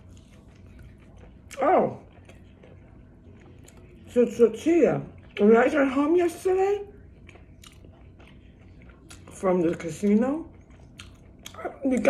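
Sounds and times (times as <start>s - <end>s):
person chewing food: 0.0s - 6.0s, 6.8s - 12.0s.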